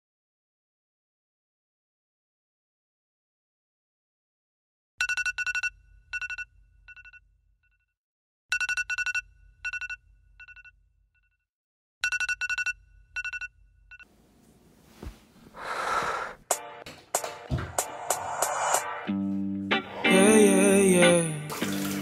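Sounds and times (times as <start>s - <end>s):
phone alarm beeping: 5.0s - 7.2s, 8.5s - 10.7s, 12.0s - 14.1s
soft rising noise: 17.4s - 20.4s.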